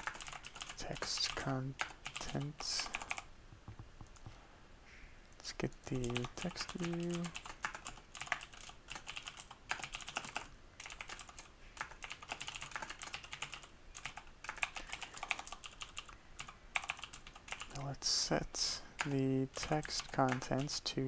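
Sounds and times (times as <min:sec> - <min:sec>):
typing on computer keyboard: 0:00.0 - 0:03.3, 0:05.9 - 0:17.8, 0:19.0 - 0:20.8.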